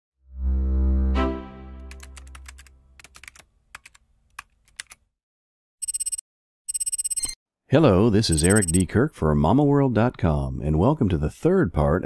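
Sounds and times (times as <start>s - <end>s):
bright electronic clicks: 5.8s - 7.4s, 8.3s - 8.8s.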